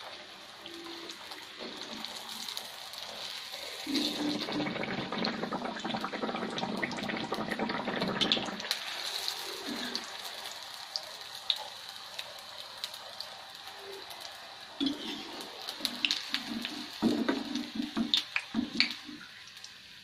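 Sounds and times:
hot oil sizzling: 0.0 - 20.0.

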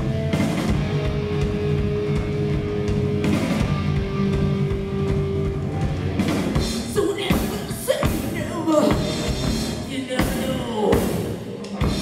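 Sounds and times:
bass guitar: 0.0 - 12.0
distorted electric guitar: 0.0 - 12.0
drums: 0.0 - 12.0.

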